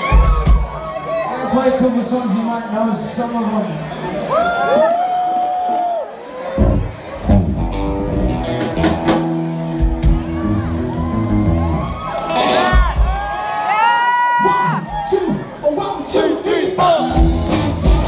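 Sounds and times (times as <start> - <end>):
crowd whooping and cheering: 0.0 - 1.8, 4.0 - 8.4, 9.5 - 15.7
amplified guitar and bass: 6.6 - 13.0, 17.0 - 18.0.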